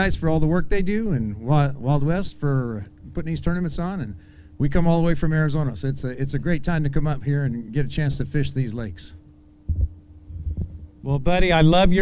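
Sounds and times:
faint hum: 0.0s - 12.0s
microphone handling thuds: 9.7s - 11.0s.

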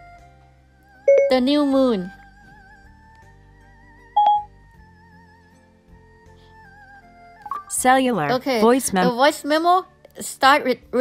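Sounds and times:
short electronic beep: 1.1s - 1.4s, 4.2s - 4.5s, 7.5s - 7.7s.

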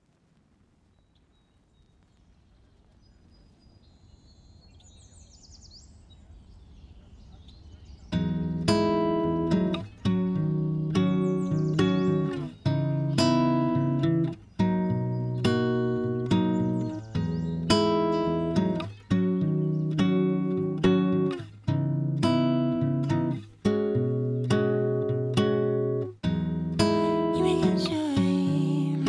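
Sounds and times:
strummed guitar chords: 8.2s - 29.0s.

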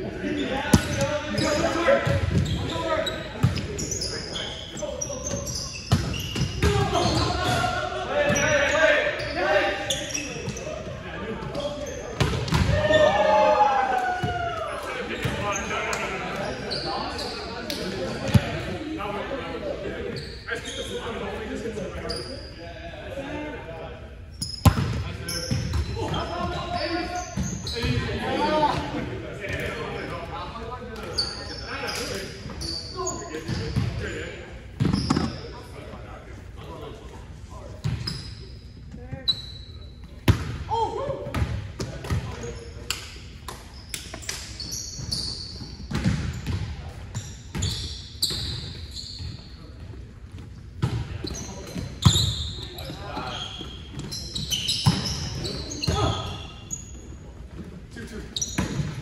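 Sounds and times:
players' voices echoing: 0.0s - 43.3s
ball bouncing on court floor: 12.2s - 12.8s, 17.7s - 18.6s, 24.4s - 26.2s, 34.8s - 35.4s, 40.2s - 42.5s, 45.8s - 46.8s
short high squeaks: 43.8s - 45.8s.

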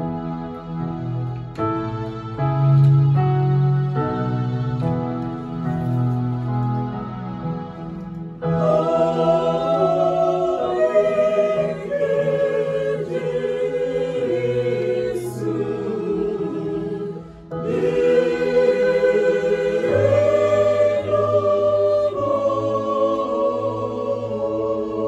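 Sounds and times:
choir singing a hymn: 8.4s - 25.0s.

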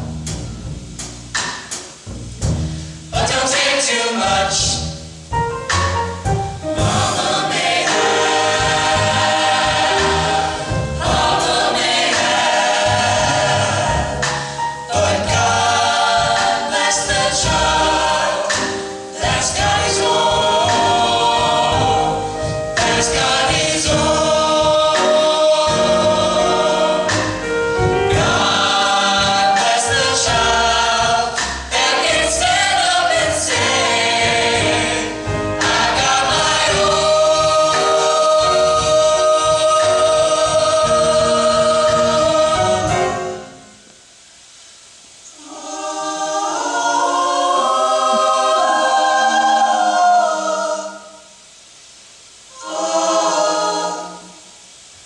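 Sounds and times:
vocal ensemble singing in harmony: 3.1s - 5.8s, 6.6s - 55.0s.

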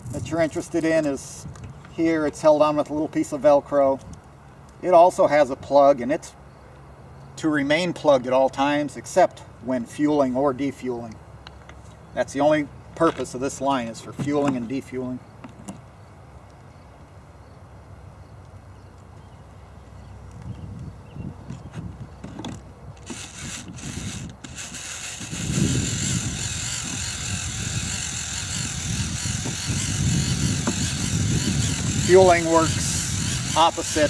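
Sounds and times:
small fuel pump running: 23.0s - 34.0s.

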